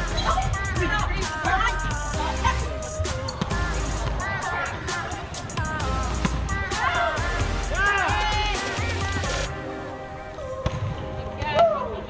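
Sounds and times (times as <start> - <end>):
players calling out: 0.0 - 9.5.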